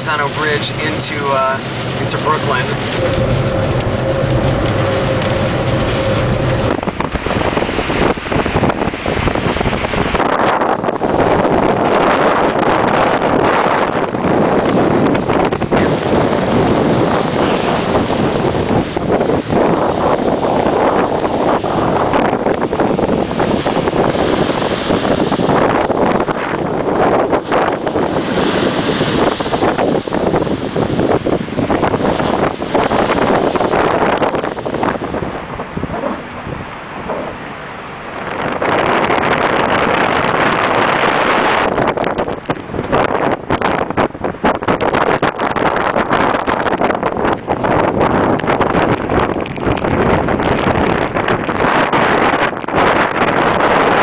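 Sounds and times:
car road noise: 0.0s - 54.0s
strong wind buffeting microphone: 0.0s - 54.0s.

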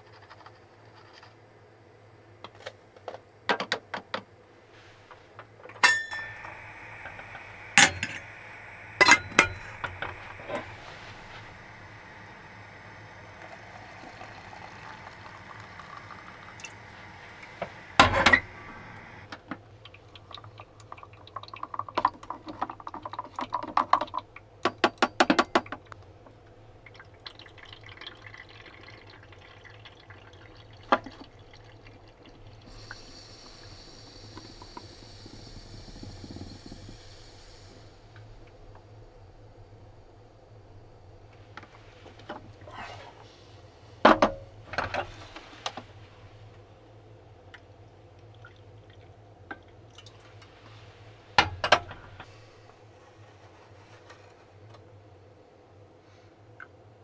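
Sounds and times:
steady hiss: 4.4s - 19.4s, 32.6s - 47.2s
cups and kitchenware clinking: 5.7s - 11.9s
water pouring from kettle: 5.8s - 24.3s, 26.8s - 39.0s.

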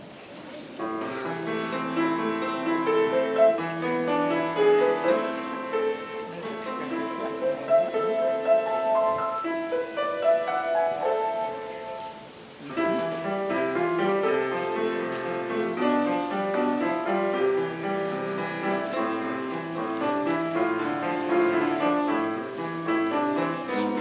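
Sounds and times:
solo classical piano: 0.0s - 24.0s.

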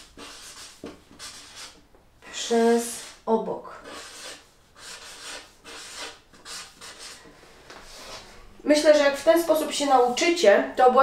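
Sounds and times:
marker scratching on paper: 0.0s - 1.8s, 2.5s - 3.2s, 3.8s - 7.2s.

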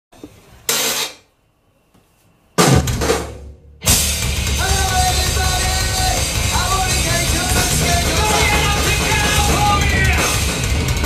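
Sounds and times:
rock band playing: 2.6s - 11.0s
cymbal crash: 2.7s - 4.6s.

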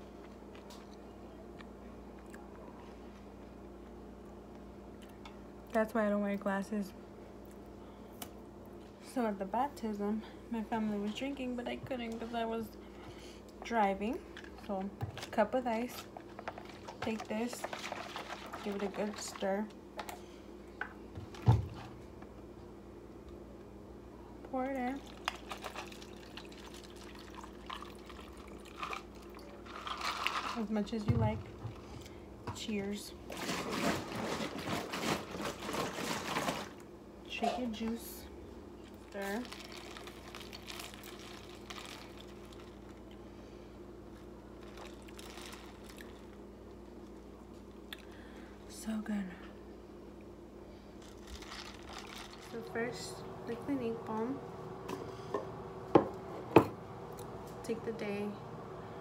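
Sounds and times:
steady low hum: 0.0s - 59.0s
ice stirred in plastic cup: 15.8s - 19.7s, 25.0s - 30.8s, 33.3s - 36.8s, 39.1s - 43.0s, 44.6s - 46.3s, 51.0s - 52.6s.

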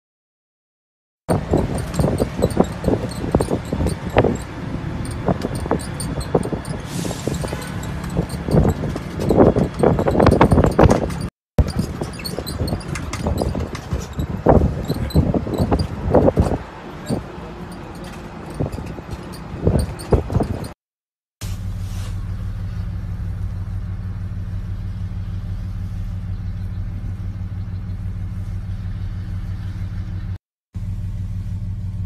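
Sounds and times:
bus and road rumble: 1.3s - 20.8s, 21.4s - 32.0s
wind buffeting microphone: 1.3s - 20.8s.

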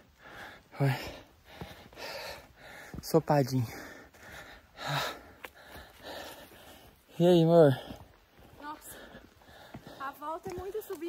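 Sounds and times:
man breathing hard: 0.0s - 10.0s.

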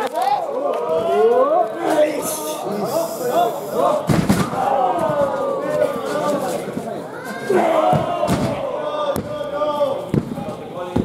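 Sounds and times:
spectators shouting: 0.0s - 10.1s.

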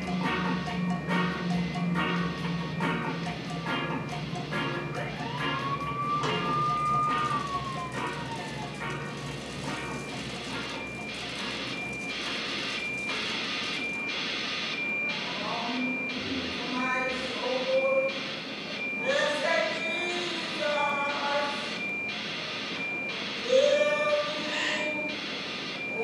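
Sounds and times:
regular pulse with high beep: 0.0s - 26.0s
siren wail: 0.0s - 26.0s.

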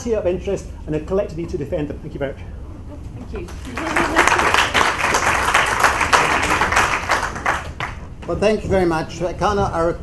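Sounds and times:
audience applauding: 3.5s - 8.0s.

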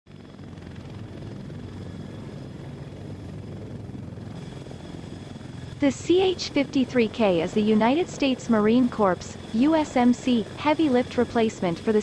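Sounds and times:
helicopter rotors beating: 0.1s - 12.0s
high turbine whine: 0.1s - 12.0s.

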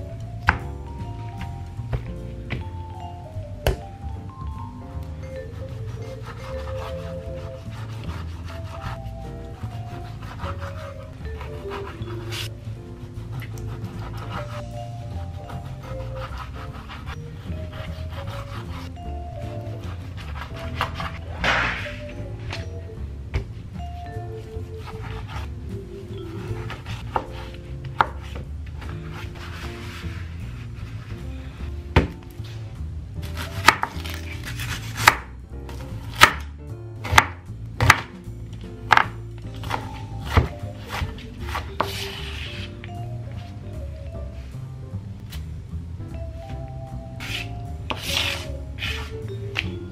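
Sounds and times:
background music with steady beat: 0.0s - 49.9s
knife scraping on cutting board: 6.0s - 9.1s, 19.9s - 22.1s, 33.3s - 35.2s, 39.6s - 42.8s, 47.2s - 49.3s
knife chopping on cutting board: 19.8s - 22.0s, 26.4s - 30.1s, 32.0s - 32.2s, 33.2s - 38.2s, 38.9s - 42.7s, 47.2s - 49.7s.

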